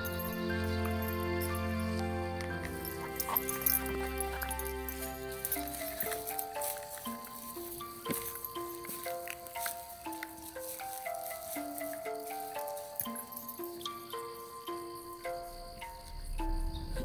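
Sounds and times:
simple melody of held notes: 0.0s - 17.0s.

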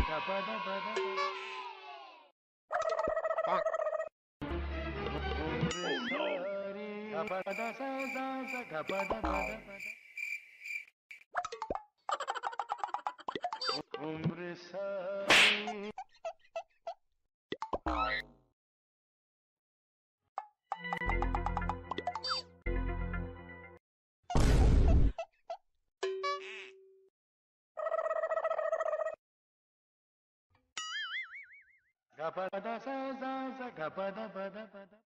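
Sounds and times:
cartoon bloops: 2.8s - 4.1s, 5.7s - 6.4s, 11.4s - 13.9s, 17.5s - 18.4s.

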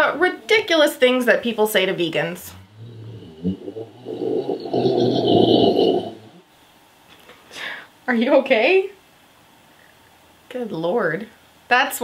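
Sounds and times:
pet making rough throaty noise: 2.4s - 6.4s.

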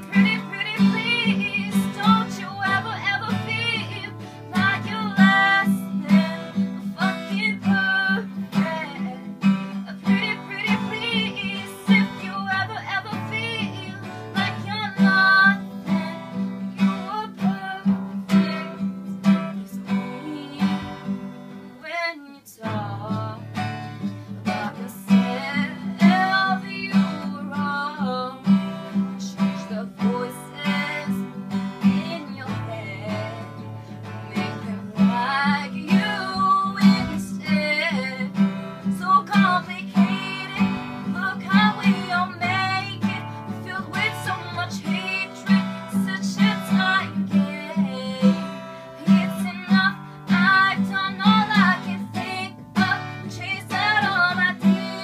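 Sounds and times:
acoustic guitar strumming: 0.0s - 21.8s, 22.6s - 55.0s
girl singing: 0.0s - 55.0s.

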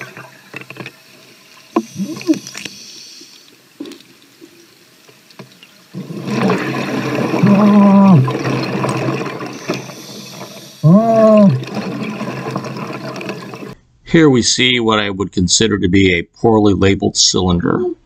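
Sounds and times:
rush of bubbles: 0.0s - 4.8s, 5.9s - 13.8s.

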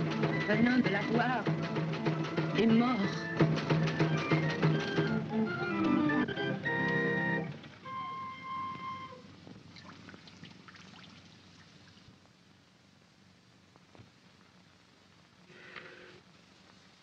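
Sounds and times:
carnival music with drum beat: 0.0s - 7.5s.

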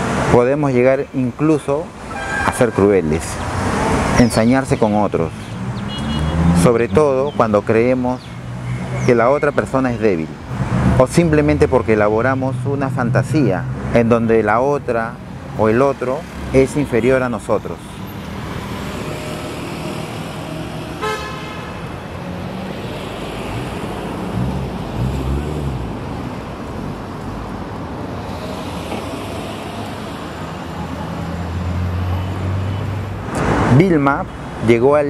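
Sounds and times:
vehicles passing on street: 0.0s - 35.0s
car horn toot: 2.0s - 3.2s, 5.9s - 6.5s, 21.0s - 21.8s.

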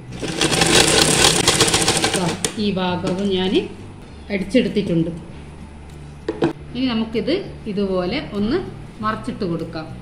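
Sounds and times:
sewing machine stitching: 0.1s - 2.6s.

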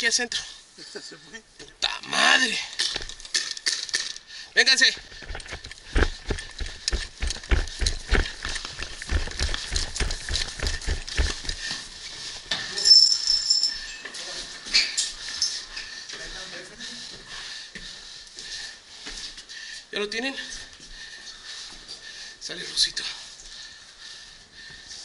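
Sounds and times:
running footsteps in boots: 4.9s - 12.0s.

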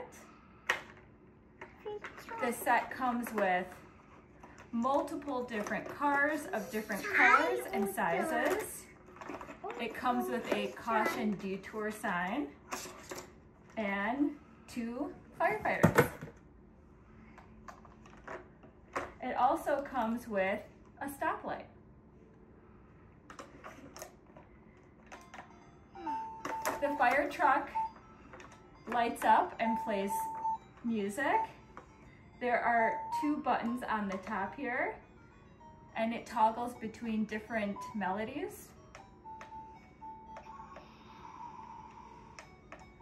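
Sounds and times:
toy playing electronic tune: 25.1s - 43.0s.

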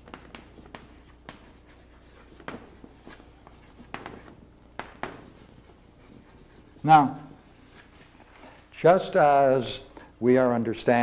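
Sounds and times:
chalk tapping and scraping on blackboard: 0.0s - 8.0s
faint low hum: 0.0s - 11.0s.

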